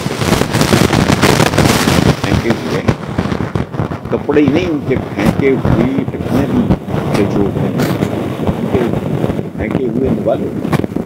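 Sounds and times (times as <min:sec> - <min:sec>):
sharp crackles and pops: 0:00.0 - 0:11.0
faint speech: 0:04.1 - 0:08.9.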